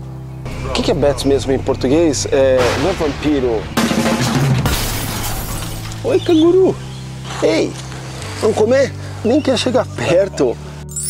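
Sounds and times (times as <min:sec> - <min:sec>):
background music: 0:00.0 - 0:11.0
crash sound effect: 0:01.7 - 0:06.0.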